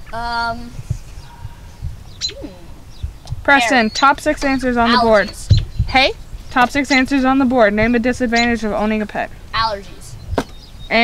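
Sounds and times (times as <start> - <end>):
low rumble on microphone: 0.0 - 11.0
person humming hmm: 2.4 - 2.8.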